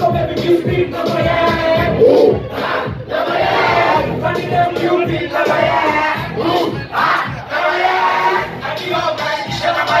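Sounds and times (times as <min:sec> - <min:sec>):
thumping beat: 0:00.0 - 0:07.5
rappers shouting a chant: 0:00.0 - 0:10.0
crowd shouting along: 0:01.8 - 0:08.6.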